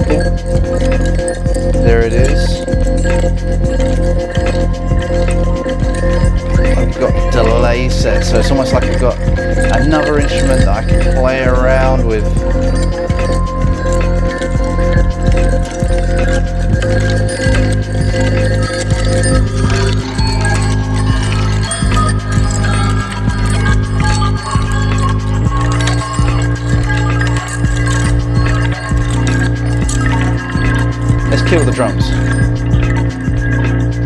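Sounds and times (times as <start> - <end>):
sustained bass notes: 0.0 - 34.0
warped looped electronic sample: 0.0 - 34.0.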